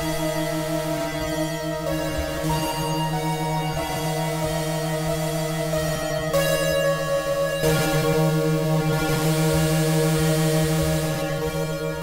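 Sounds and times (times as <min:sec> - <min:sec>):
synthesizer droning chord: 0:00.0 - 0:12.0.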